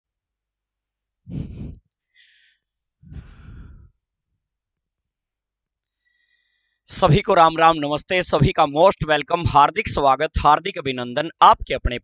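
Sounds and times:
man breathing out hard: 1.3s - 4.0s.

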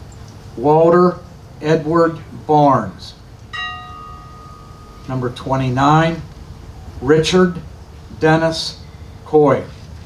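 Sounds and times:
bell ringing: 3.6s - 5.6s.

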